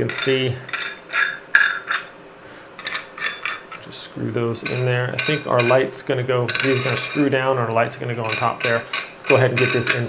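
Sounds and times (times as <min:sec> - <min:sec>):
metal light fixture parts clinking: 0:00.0 - 0:02.1, 0:02.8 - 0:03.9, 0:04.6 - 0:10.0.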